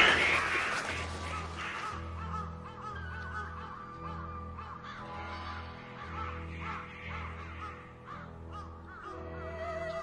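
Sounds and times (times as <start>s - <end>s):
background music: 0.0s - 10.0s
crows cawing: 0.0s - 10.0s.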